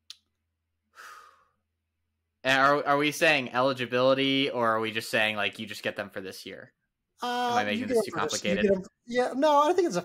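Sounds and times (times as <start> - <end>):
man's mouth click: 0.0 - 0.4
soft sigh of breath: 0.9 - 1.6.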